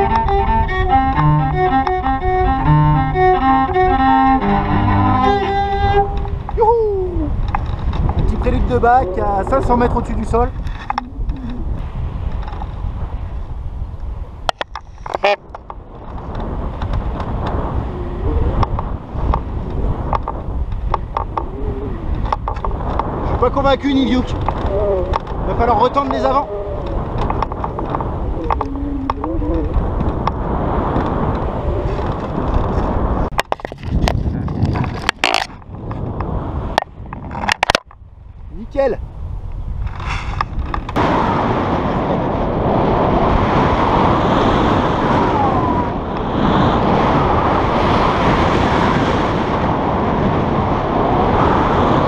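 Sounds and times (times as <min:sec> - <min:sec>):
wind buffeting microphone: 0:00.0 - 0:52.0
person speaking: 0:00.9 - 0:06.0, 0:08.2 - 0:11.8, 0:23.7 - 0:27.1, 0:28.3 - 0:29.8
camera handling clicks and knocks: 0:33.3 - 0:35.6, 0:37.2 - 0:38.0.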